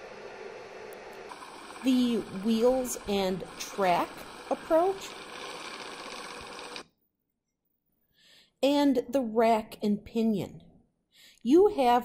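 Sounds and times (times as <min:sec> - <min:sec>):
motorized cart whirring on rails: 0:00.0 - 0:06.9.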